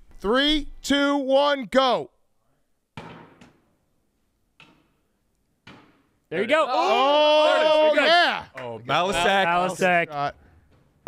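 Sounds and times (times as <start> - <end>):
balls hitting hardwood floor: 3.0 - 3.6, 5.6 - 6.1.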